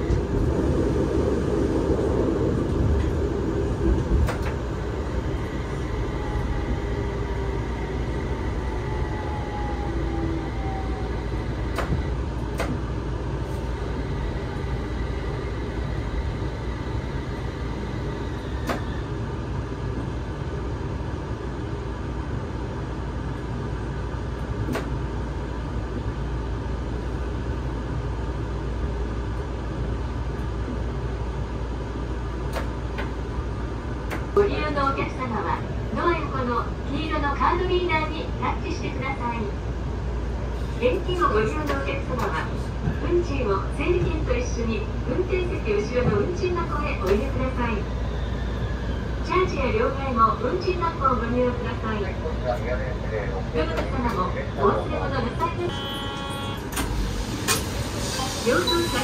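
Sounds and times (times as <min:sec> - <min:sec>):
tram low rumble: 0:00.0 - 0:59.0.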